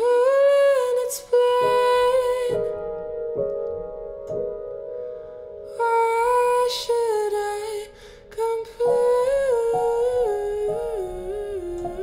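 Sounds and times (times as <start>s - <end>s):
soft piano notes: 0.0s - 12.0s.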